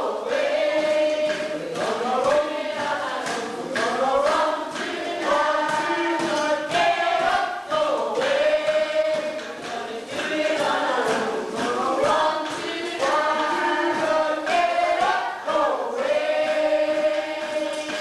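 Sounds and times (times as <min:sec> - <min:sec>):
cast singing in chorus: 0:00.0 - 0:18.0.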